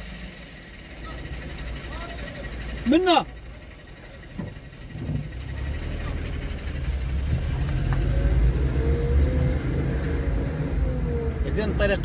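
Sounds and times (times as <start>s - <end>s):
car engine and tyre rumble: 0.0s - 12.0s.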